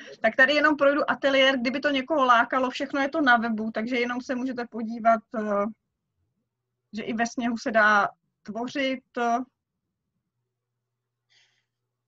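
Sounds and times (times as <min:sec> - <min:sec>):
faint breath: 0:11.2 - 0:11.9.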